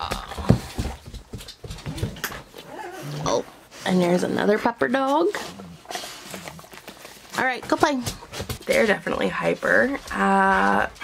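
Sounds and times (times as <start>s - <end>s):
dog paws knocking and clicking: 0.0s - 2.7s, 6.5s - 11.0s.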